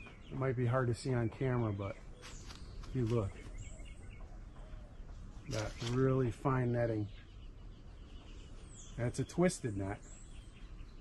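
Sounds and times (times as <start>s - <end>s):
faint bird calls: 0.0s - 11.0s.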